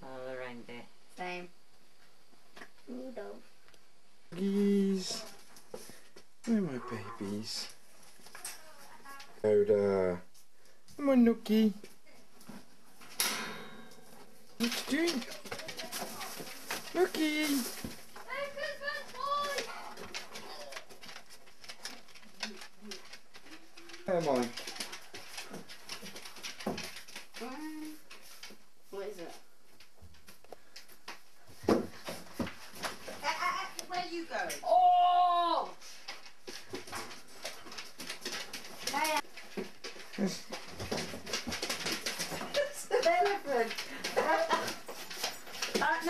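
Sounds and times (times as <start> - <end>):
rustling: 10.2 - 46.0
dog claws clicking on wooden floor: 14.6 - 28.6, 36.0 - 46.0.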